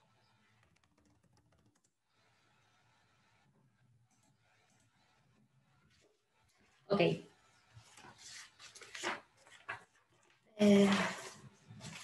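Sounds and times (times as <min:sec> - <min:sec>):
faint keyboard clicks: 0:00.5 - 0:02.0.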